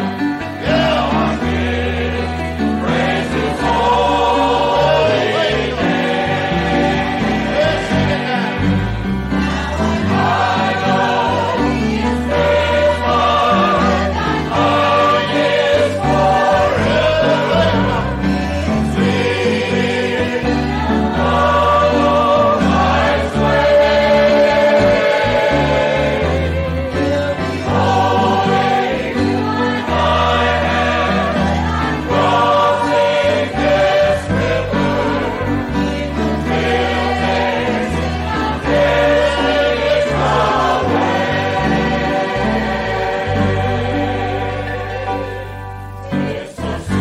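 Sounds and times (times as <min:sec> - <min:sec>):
group singing gospel: 0:00.0 - 0:47.0.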